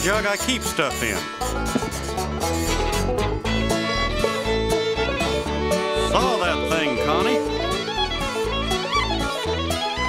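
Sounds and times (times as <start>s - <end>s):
acoustic guitar: 0.0s - 10.0s
bass: 0.0s - 10.0s
fiddle: 0.0s - 10.0s.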